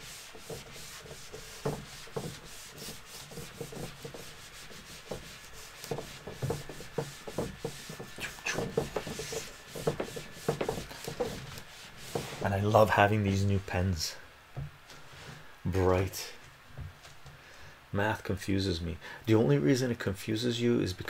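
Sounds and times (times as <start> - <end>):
cloth wiping a whiteboard: 0.0 - 13.8.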